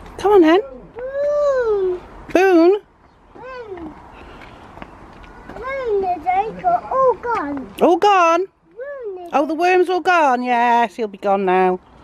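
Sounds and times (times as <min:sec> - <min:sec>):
toddler sing-song call: 0:03.3 - 0:04.0, 0:05.2 - 0:07.7.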